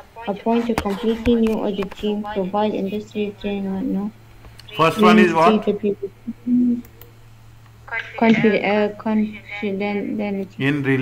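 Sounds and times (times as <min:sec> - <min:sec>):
steady low hum: 0:00.0 - 0:11.0
person humming: 0:05.2 - 0:06.9.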